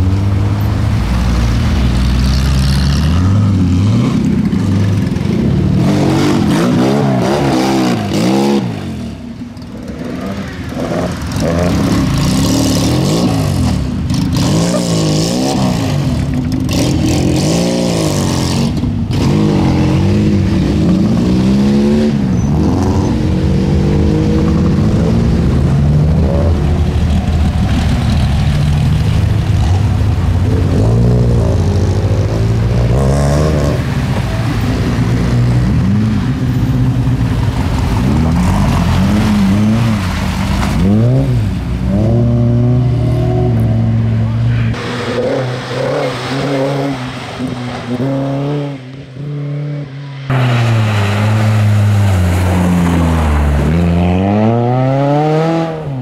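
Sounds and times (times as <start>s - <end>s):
rally car engines revving: 0.0s - 56.0s.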